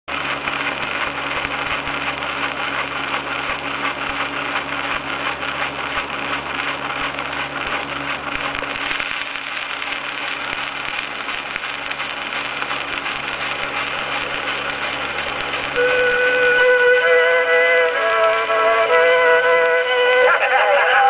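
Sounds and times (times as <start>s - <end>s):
phonograph surface crackle and hiss: 0.1s - 21.0s
orchestra sustained notes: 15.8s - 21.0s.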